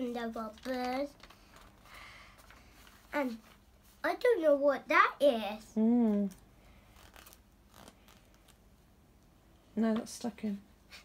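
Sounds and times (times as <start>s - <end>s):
paper rustling: 0.0s - 4.0s.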